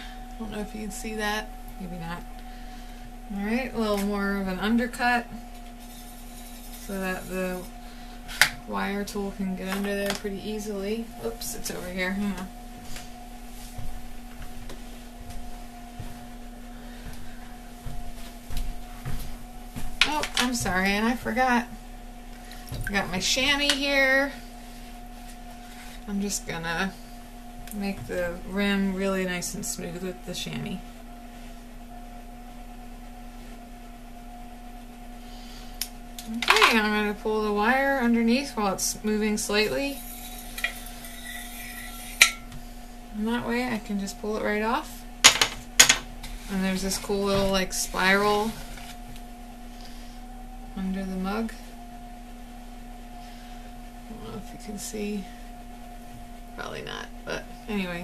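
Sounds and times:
potter's wheel motor humming: 0:00.0 - 0:58.0.

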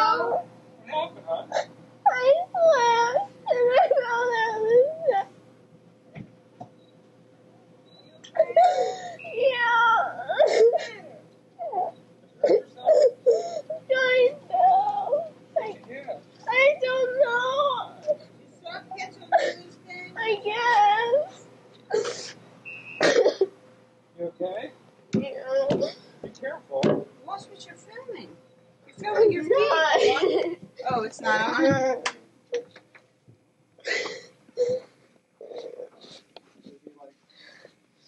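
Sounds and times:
person coughing: 0:23.0 - 0:23.5.

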